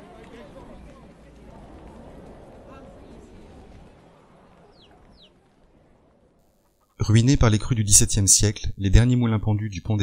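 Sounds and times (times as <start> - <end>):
faint background ambience: 0.0 - 10.0.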